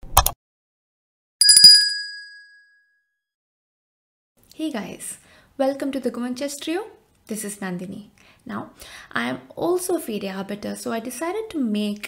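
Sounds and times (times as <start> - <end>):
bright bell ding: 1.4 - 2.8.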